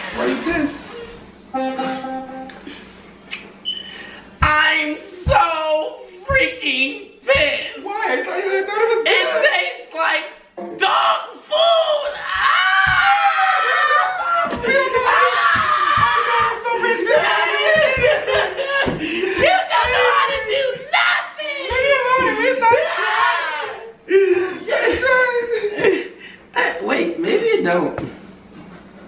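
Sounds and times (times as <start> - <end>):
man shouting: 4.4 - 25.9
man screaming: 10.8 - 25.8
men shrieking and yelling: 10.8 - 26.2.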